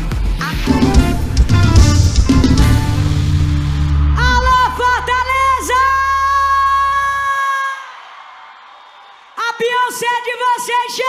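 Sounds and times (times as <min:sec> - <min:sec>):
concert music held note: 0:00.7 - 0:07.2.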